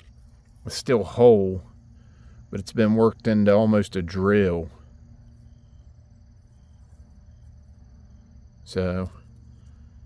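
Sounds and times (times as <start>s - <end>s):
crickets trilling: 0.0s - 10.0s
low steady rumble: 0.0s - 10.0s.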